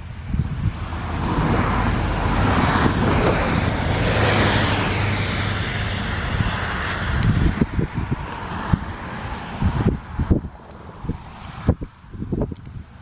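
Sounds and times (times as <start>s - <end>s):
diesel locomotive engine rumble: 0.0s - 13.0s.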